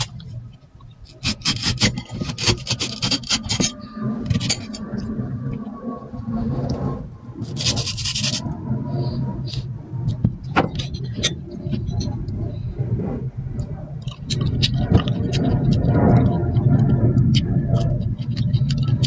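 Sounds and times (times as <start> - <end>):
steady low rumble: 0.0 - 19.0
knife scraping and slicing fruit: 1.1 - 4.8, 7.4 - 8.5.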